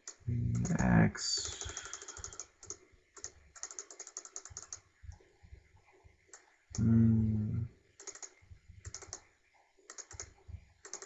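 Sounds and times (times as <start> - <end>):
computer keyboard clicking: 0.0 - 0.8, 1.4 - 4.8, 8.0 - 9.2, 9.9 - 11.0.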